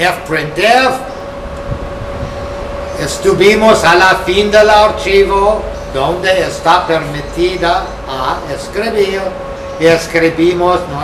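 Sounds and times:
mid-pitched hum: 0.0s - 11.0s.

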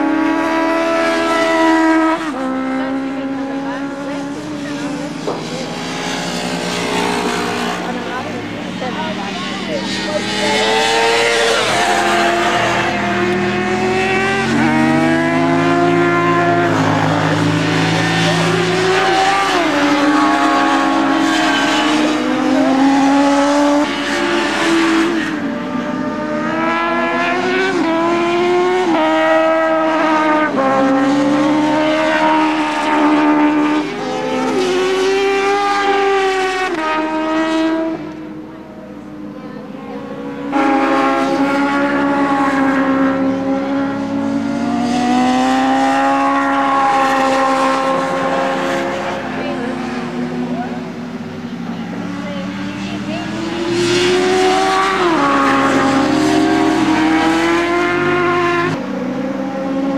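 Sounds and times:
racing motorcycle engines: 0.0s - 59.9s.

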